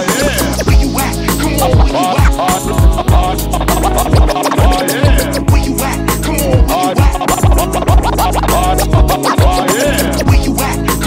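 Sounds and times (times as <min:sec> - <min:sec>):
turntable scratching: 0:00.0 - 0:11.0
kick-drum beat: 0:00.1 - 0:10.6.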